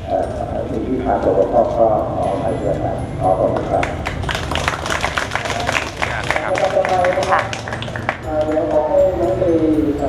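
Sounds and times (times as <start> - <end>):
people applauding: 3.7 - 9.0.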